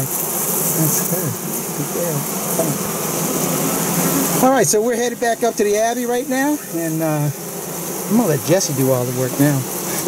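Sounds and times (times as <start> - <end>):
mass of bees buzzing: 0.0 - 10.0
single bee buzzing: 0.0 - 10.0.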